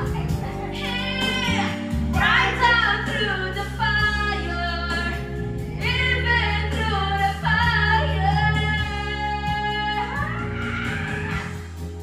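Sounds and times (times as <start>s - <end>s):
women singing karaoke: 0.0s - 5.2s, 5.8s - 11.7s
backing track with bass line: 0.0s - 12.0s.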